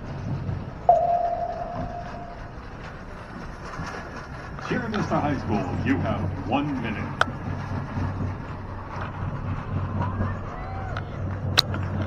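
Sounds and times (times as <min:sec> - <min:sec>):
single ringing musical note: 0:00.9 - 0:02.8
stadium background: 0:00.9 - 0:02.9.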